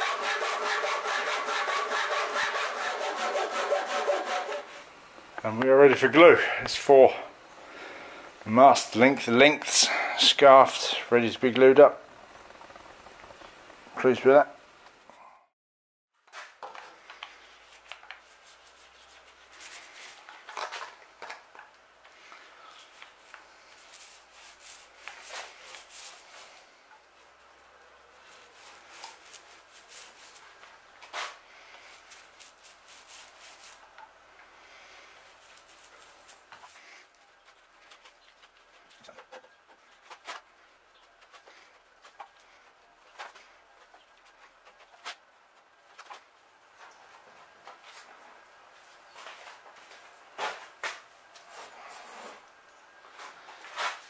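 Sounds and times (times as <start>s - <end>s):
applicator scraping on wood: 0.0s - 4.8s.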